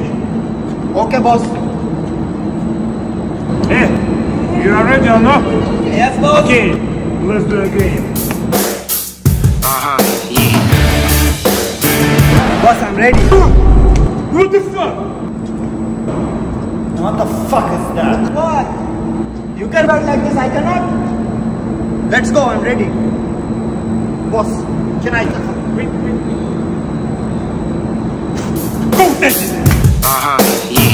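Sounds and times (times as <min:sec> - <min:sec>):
low mechanical hum and rumble: 0:00.0 - 0:30.9.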